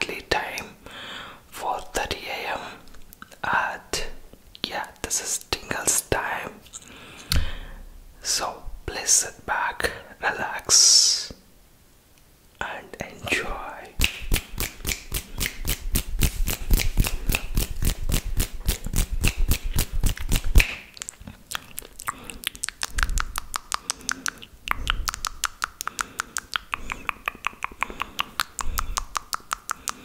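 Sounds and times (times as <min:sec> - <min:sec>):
sharp mouth clicks: 0:13.5 - 0:30.0
lip and tongue noises: 0:13.8 - 0:30.0.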